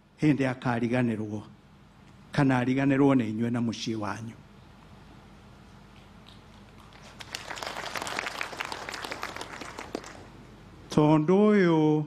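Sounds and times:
audience applauding: 6.6s - 10.4s.

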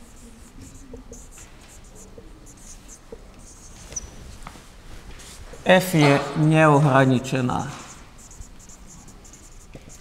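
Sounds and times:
marker squeaking on whiteboard: 0.0s - 4.4s, 7.6s - 10.0s.

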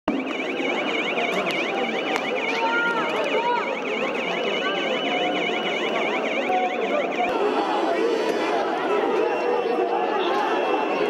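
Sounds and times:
crowd din: 0.1s - 11.0s
electronic siren wailing: 0.1s - 11.0s.

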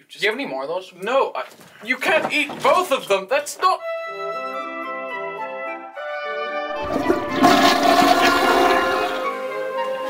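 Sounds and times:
background music: 3.6s - 10.0s.

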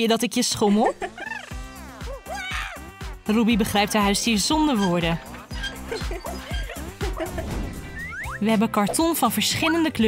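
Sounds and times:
light background music: 0.0s - 10.0s
small dog yipping and whimpering: 4.8s - 7.0s.

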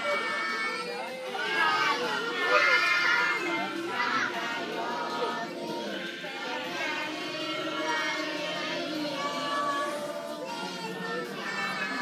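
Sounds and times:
adults talking: 0.0s - 12.0s
children chattering: 0.0s - 12.0s.

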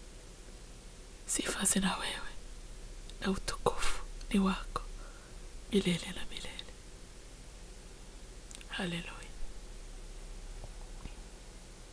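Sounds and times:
woman saying a prayer word: 3.2s - 4.9s.

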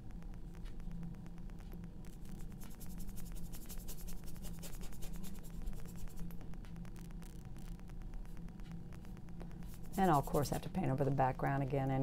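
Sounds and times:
low steady hum: 0.0s - 12.0s
paintbrush scratching on canvas: 2.6s - 6.2s, 9.7s - 10.6s.

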